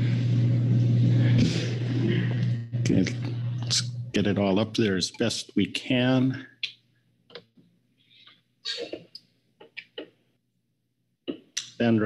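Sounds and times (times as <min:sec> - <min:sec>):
loud steady low hum: 0:00.0 - 0:05.2.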